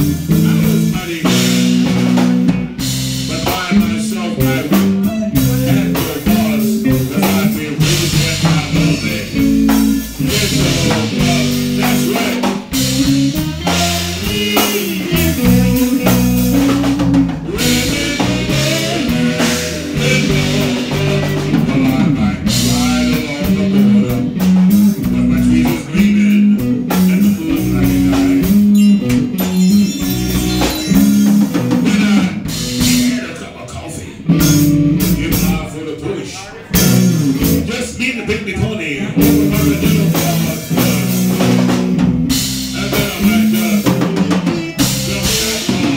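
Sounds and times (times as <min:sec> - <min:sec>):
drum kit: 0:00.0 - 0:33.5, 0:34.1 - 0:45.9
electric bass: 0:00.0 - 0:35.8, 0:36.7 - 0:45.9
electric guitars: 0:00.0 - 0:45.9.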